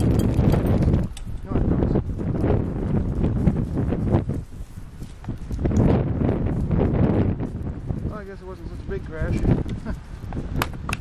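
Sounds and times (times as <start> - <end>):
rustling and bumping in dry grass: 0.0 - 11.0.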